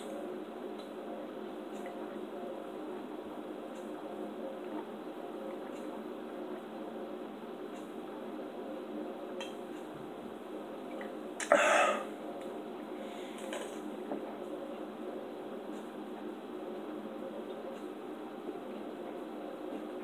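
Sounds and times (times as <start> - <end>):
background hum: 0.0 - 20.0
person swallowing: 11.4 - 12.0.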